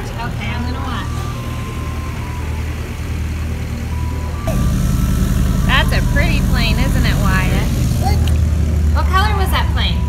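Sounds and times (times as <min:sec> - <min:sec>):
propeller airplane engine drone: 0:00.0 - 0:10.0.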